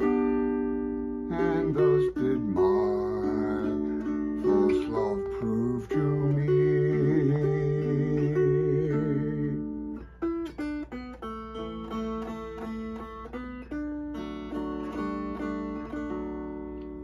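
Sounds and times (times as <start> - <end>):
strummed dulcimer melody: 0.0 - 17.0.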